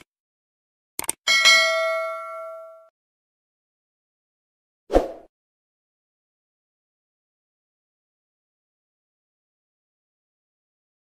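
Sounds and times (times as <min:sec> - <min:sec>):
bright bell ding: 0:01.3 - 0:02.9.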